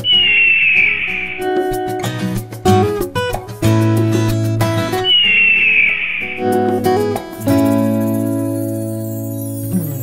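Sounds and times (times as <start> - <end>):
high whistle-like tone sliding down: 0.0 - 1.6, 5.1 - 6.7
strummed acoustic guitar: 0.0 - 10.0.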